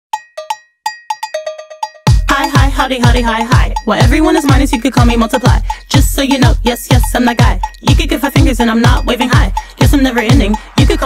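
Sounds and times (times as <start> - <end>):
cowbell struck: 0.1 - 11.0.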